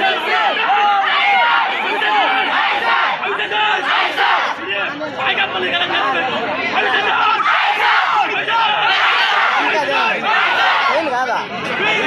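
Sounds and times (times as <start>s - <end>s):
crowd shouting slogans: 0.0s - 12.0s.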